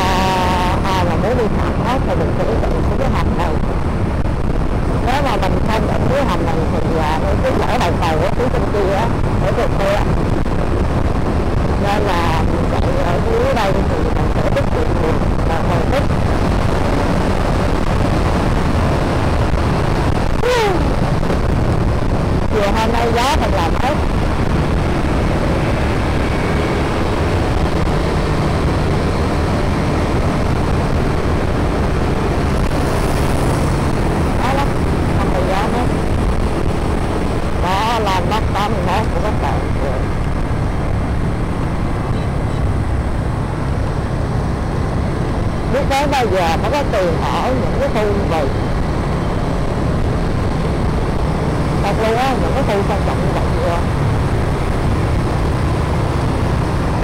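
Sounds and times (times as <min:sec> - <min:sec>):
motorbike engine: 0:00.0 - 0:57.0
wind on microphone: 0:00.0 - 0:57.0.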